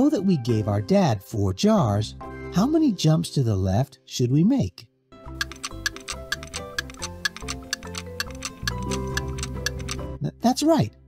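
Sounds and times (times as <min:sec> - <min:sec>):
light background music: 0:00.0 - 0:11.0
clock ticking: 0:05.3 - 0:10.0.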